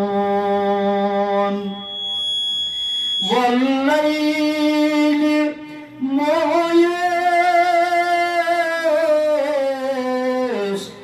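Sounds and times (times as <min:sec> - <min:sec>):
man chanting into microphone: 0:00.0 - 0:01.8, 0:03.2 - 0:11.0.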